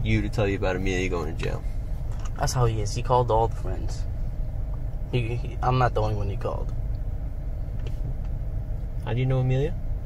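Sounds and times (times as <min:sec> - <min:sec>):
low room noise rumble: 0:00.0 - 0:10.0.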